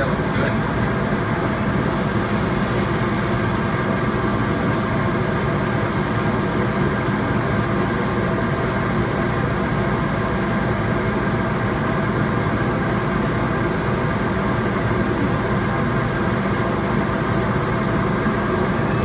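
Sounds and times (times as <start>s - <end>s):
laser cutter mechanical drone: 17.9s - 19.0s.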